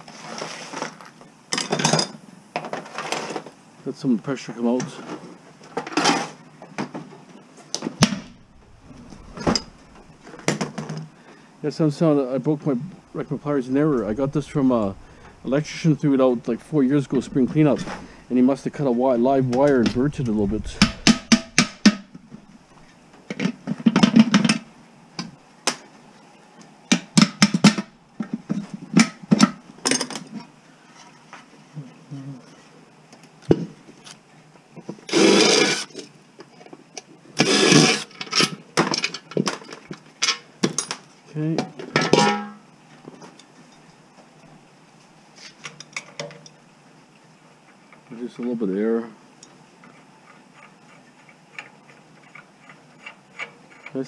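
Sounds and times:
metal parts and tools clanking: 8.2 - 11.0
rasping noises: 13.0 - 23.0.

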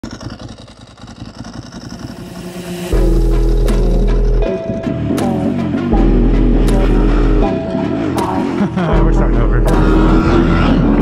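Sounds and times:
motorcycle engine pulsing exhaust: 0.0 - 11.0.

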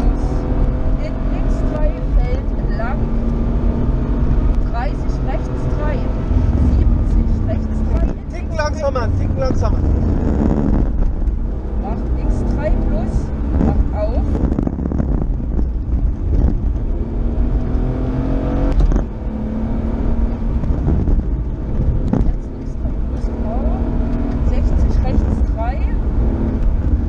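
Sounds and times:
car engine running hard: 0.0 - 27.0.

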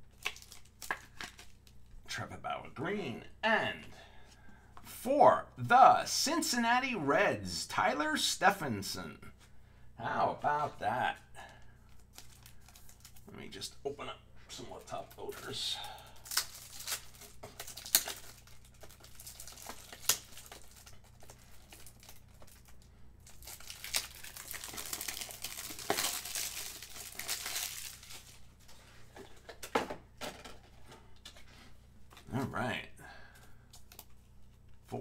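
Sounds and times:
plastic packaging crinkling: 0.0 - 1.8, 11.8 - 13.3, 14.9 - 29.7.

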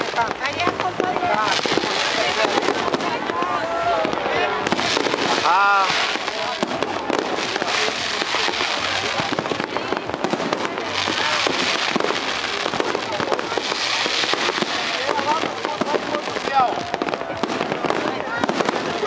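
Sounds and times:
fireworks crackling and popping: 0.0 - 19.0.

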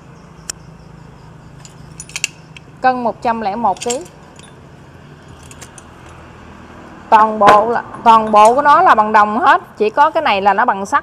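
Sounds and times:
metallic clinks of brass fittings: 1.6 - 2.7, 3.6 - 6.2.

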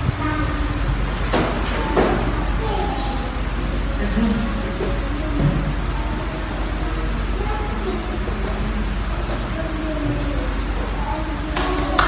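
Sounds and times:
faint voices: 0.0 - 12.0
steady low hum: 0.0 - 12.0
hand clap: 11.5 - 12.0.

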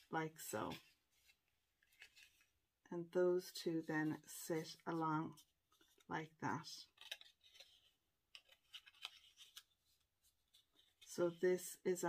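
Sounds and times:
cardstock rustling and ticking: 6.8 - 11.2.

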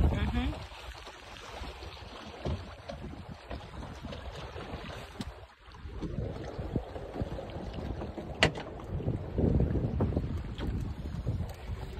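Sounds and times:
wind buffeting microphone: 0.0 - 0.8, 1.6 - 11.9
water slapping against hull: 0.0 - 11.9.

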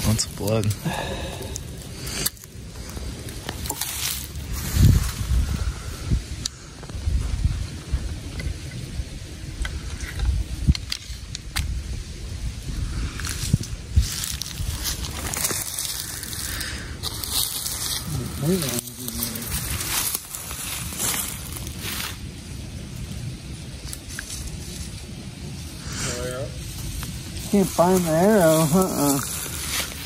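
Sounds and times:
footsteps crunching dry leaves: 0.0 - 5.5, 13.1 - 22.3, 26.6 - 30.0
wind buffeting microphone: 0.0 - 30.0.

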